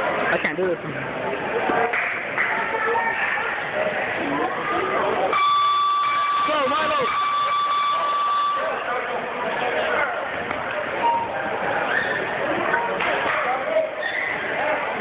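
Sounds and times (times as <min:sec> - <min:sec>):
spectators' voices and shouts: 0:00.0 - 0:15.0
electronic buzzer tone: 0:05.3 - 0:08.8.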